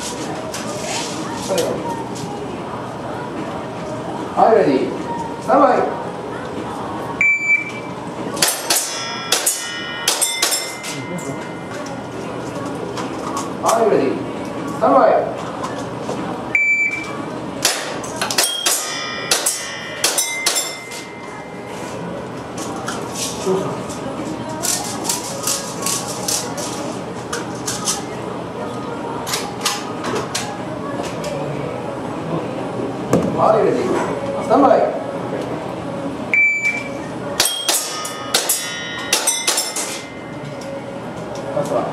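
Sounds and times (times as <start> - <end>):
electronic timer beep: 7.2 - 7.9, 16.6 - 17.1, 36.3 - 37.0
steel targets ringing: 8.4 - 12.2, 17.6 - 21.8, 37.4 - 41.2.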